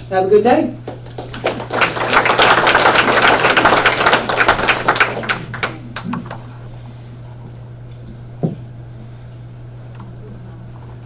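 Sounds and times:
audience applauding: 0:00.9 - 0:06.6.

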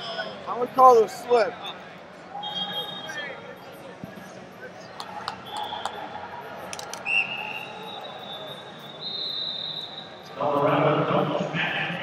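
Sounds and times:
high steady whistle tones: 0:02.4 - 0:03.3, 0:07.0 - 0:10.3
scattered clicks and knocks: 0:06.7 - 0:07.0.

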